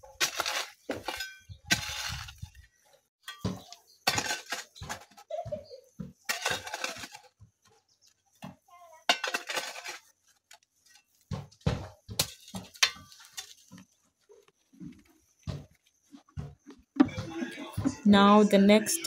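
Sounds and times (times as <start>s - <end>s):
hoe chopping and scraping soil: 0.0s - 2.6s, 3.4s - 5.2s, 6.0s - 7.5s, 9.2s - 13.9s.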